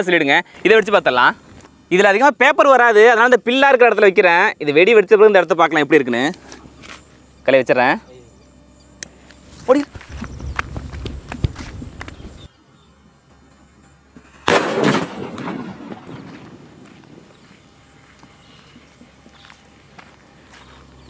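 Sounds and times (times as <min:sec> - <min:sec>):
fuse sputtering and crackling: 0:08.7 - 0:21.0
firecracker bang: 0:14.2 - 0:17.3.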